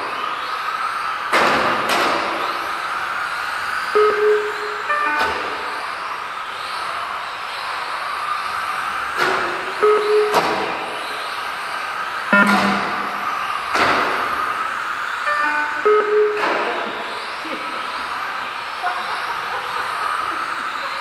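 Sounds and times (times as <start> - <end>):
short electronic beeps: 4.0 - 5.8, 9.4 - 11.2, 12.3 - 13.5, 15.3 - 17.2.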